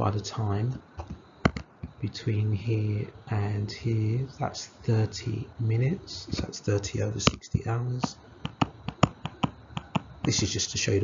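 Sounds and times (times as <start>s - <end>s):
stylus tapping on tablet screen: 1.0s - 2.0s, 8.0s - 10.4s.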